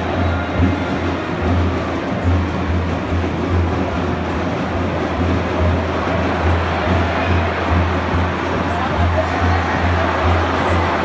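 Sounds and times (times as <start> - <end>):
bass drums beating: 0.0 - 11.0.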